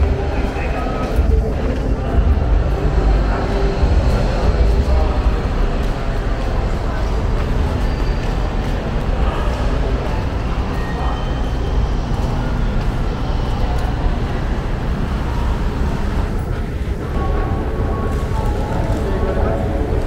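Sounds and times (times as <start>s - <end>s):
indoor mall ambience: 0.0s - 20.0s.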